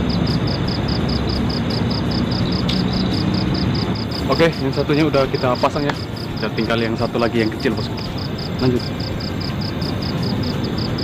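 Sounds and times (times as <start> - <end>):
insect chirping: 0.0 - 11.0
steady rushing noise: 0.0 - 11.0.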